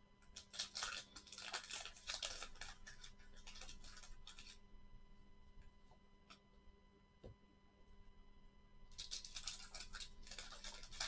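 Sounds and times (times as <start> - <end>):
wax paper wrapper crinkling: 0.3 - 4.6, 8.9 - 11.0.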